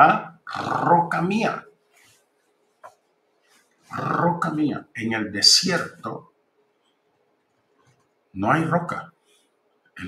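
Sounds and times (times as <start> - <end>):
man speaking: 0.0 - 1.7, 3.9 - 6.3, 8.4 - 9.2.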